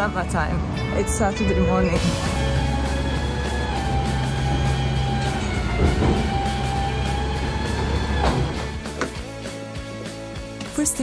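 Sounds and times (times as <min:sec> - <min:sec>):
background music: 0:00.0 - 0:11.0
garbage truck engine rumble: 0:02.0 - 0:09.2.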